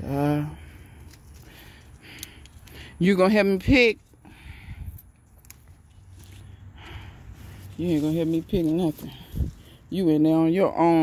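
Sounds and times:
rustling of vines and leaves: 0.0 - 11.0.

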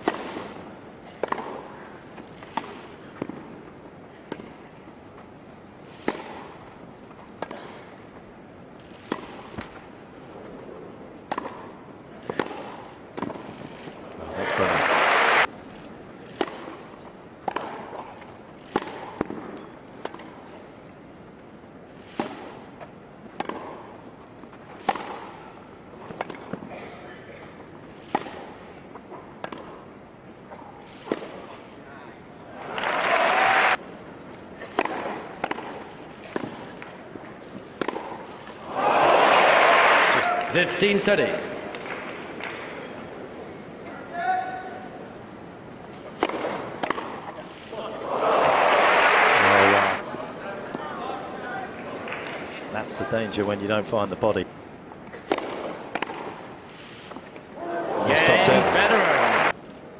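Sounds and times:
tennis balls struck by racquets: 0.0 - 5.3, 5.9 - 9.9, 10.5 - 14.8, 16.3 - 20.5, 22.0 - 26.7, 27.8 - 31.5, 34.4 - 38.6, 45.8 - 47.7, 55.1 - 57.4
crowd applause and cheers: 14.3 - 15.5, 32.6 - 33.8, 38.7 - 40.6, 48.0 - 50.0, 57.8 - 59.5.

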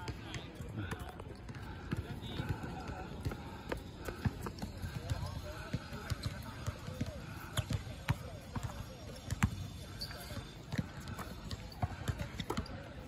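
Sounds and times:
basketballs bouncing on hard court: 0.0 - 12.8.

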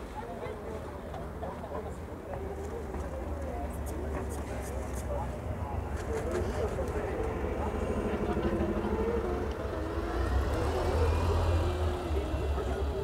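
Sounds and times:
people chatting: 0.0 - 13.0
street traffic rumble: 0.0 - 13.0.

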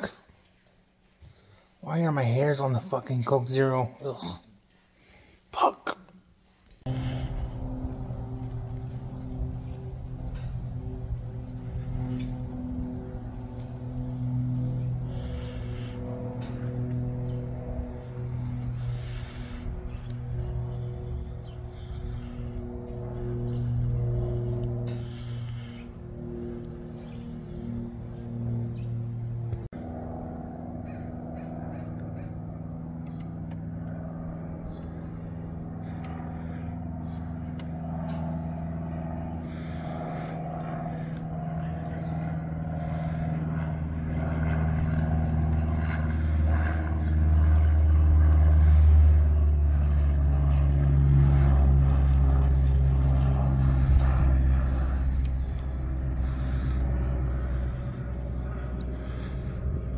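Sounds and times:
propeller airplane engine drone: 0.0 - 59.9.

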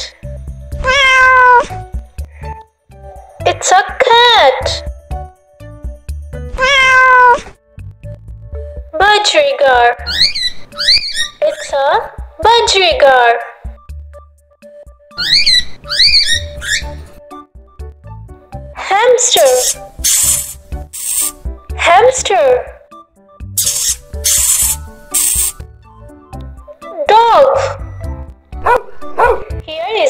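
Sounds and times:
light background music: 0.0 - 30.0
cat meowing: 0.8 - 1.8, 6.5 - 7.6
hamster squeaking: 10.0 - 11.7, 15.2 - 17.0, 19.3 - 21.4, 23.6 - 25.6.

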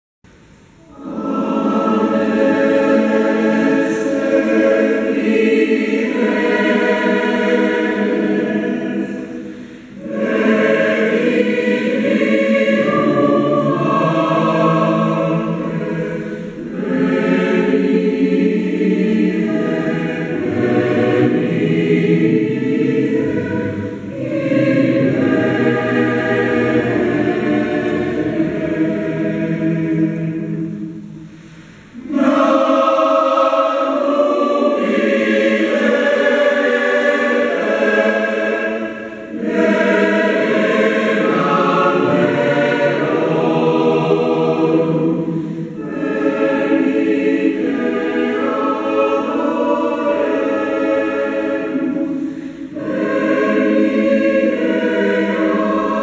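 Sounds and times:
mixed choir singing a carol: 0.4 - 56.0.

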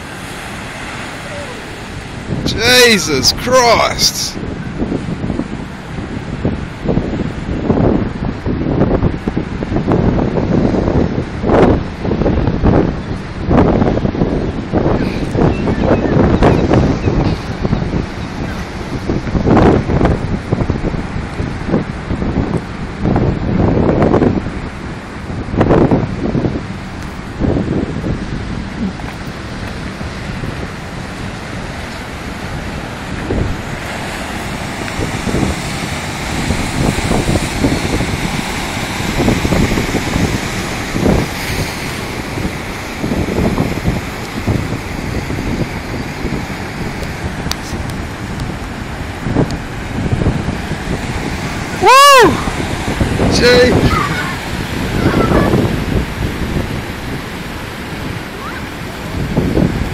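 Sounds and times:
breaking surf: 0.0 - 59.9
wind buffeting microphone: 0.0 - 59.9.

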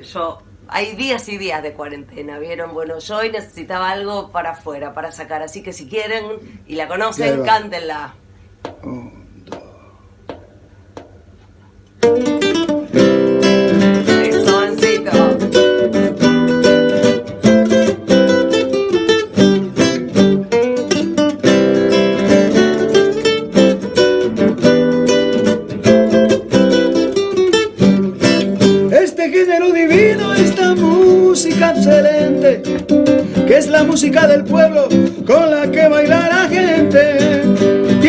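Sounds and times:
acoustic guitar strummed: 11.9 - 38.0.

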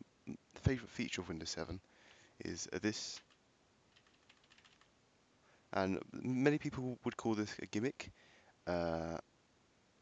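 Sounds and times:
keyboard key clicks: 4.0 - 4.9.

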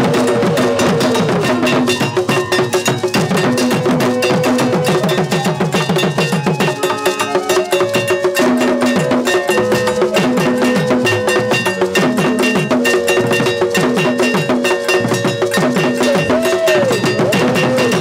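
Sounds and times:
iron bells struck rapidly: 0.0 - 18.0
stick-played barrel drums: 0.0 - 18.0.

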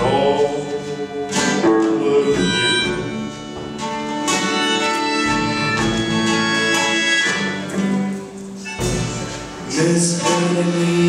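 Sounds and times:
guitar: 0.0 - 11.0.

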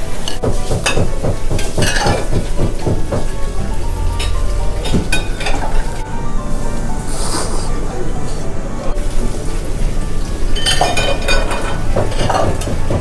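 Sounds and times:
person slurping noodles: 7.1 - 7.7.

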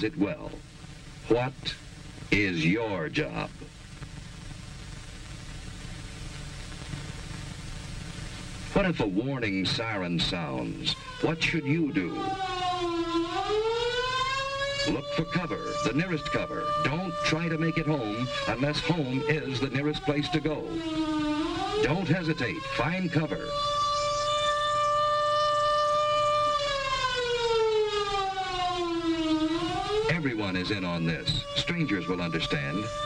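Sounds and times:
warning siren rising in pitch: 9.8 - 33.0.

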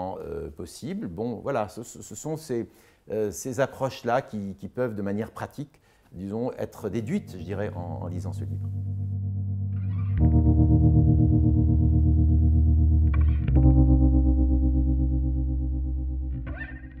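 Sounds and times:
electric guitar chords: 7.0 - 17.0.

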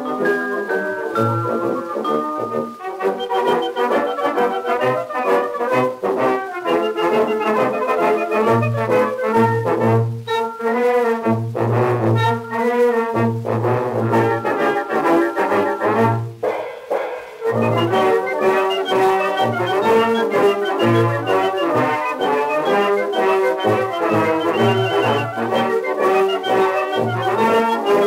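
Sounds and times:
brass band playing a march: 1.4 - 16.3, 17.4 - 28.0.

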